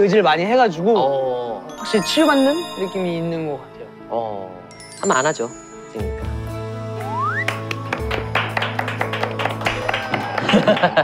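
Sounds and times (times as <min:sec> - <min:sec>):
rising whistle-like tone: 0:07.0 - 0:07.6.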